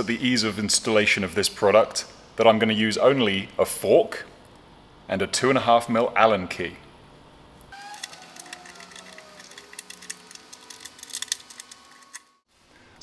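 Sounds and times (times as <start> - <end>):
faint squeal sliding down: 7.7 - 10.2.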